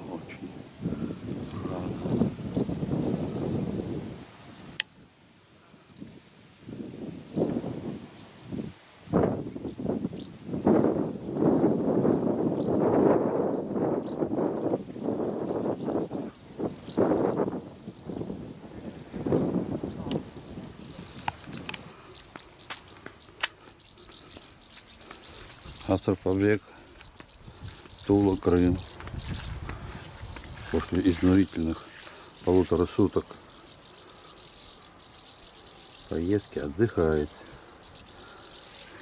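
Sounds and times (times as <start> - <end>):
wind buffeting microphone: 0.0 - 33.2.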